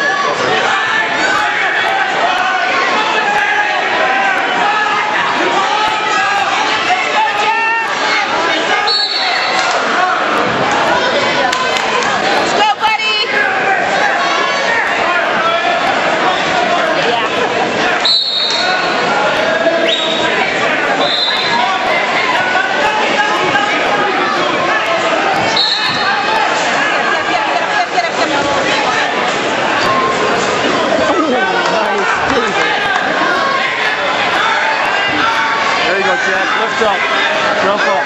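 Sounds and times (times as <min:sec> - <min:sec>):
spectators chattering: 0:00.0 - 0:38.0.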